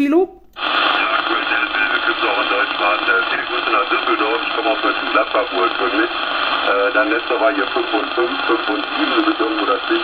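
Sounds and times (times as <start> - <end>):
radio band noise hiss: 0.6 - 10.0
voice over radio: 0.6 - 10.0.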